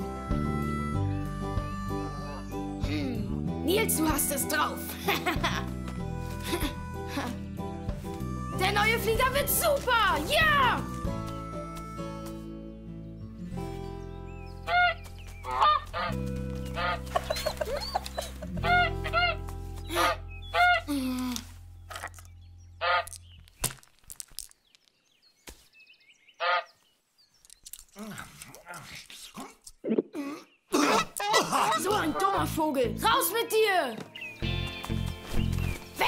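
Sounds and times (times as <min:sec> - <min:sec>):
soft background music: 0:00.0 - 0:23.0, 0:31.8 - 0:36.0
goose honking: 0:14.7 - 0:16.2, 0:16.8 - 0:17.5, 0:18.6 - 0:20.8, 0:22.8 - 0:23.2, 0:26.4 - 0:26.7.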